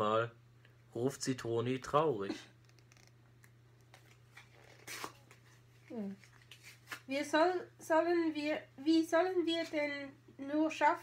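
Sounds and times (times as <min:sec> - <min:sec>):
candy wrapper crinkling: 0:02.6 - 0:07.0.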